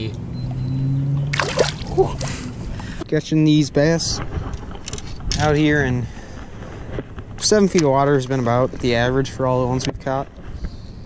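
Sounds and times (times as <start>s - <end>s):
fish splashing water: 1.3s - 2.5s.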